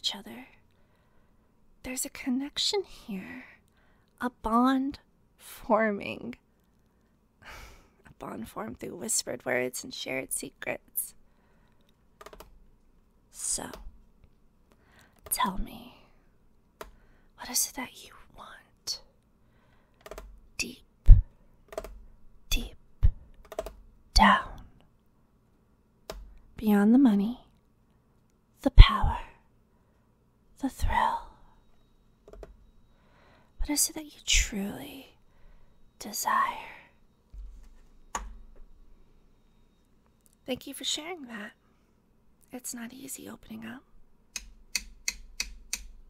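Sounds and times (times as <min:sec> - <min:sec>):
woman whispering: 0:00.0 - 0:00.6, 0:13.3 - 0:13.8, 0:15.3 - 0:16.1, 0:17.4 - 0:19.1, 0:20.6 - 0:21.3, 0:22.5 - 0:22.8, 0:24.2 - 0:24.8, 0:30.6 - 0:31.5, 0:33.6 - 0:35.2, 0:36.0 - 0:37.0, 0:40.5 - 0:41.6
keyboard key clicks: 0:20.0 - 0:20.3, 0:21.7 - 0:22.0, 0:23.4 - 0:23.8, 0:32.3 - 0:32.6.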